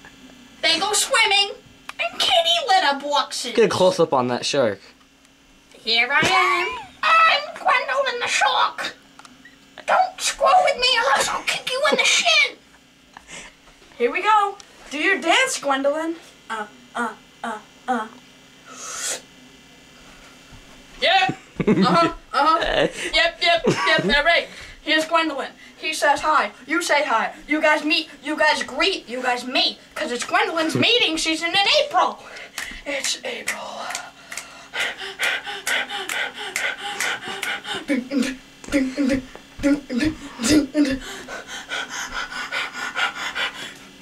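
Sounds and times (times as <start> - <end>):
person's breathy hissed vocal: 18.7 - 19.3
rhythmic breathy vocal bursts: 32.1 - 44.0.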